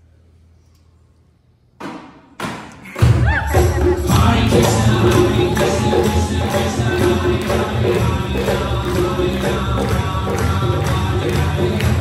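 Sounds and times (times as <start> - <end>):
band with bass and hand percussion: 2.8 - 12.0.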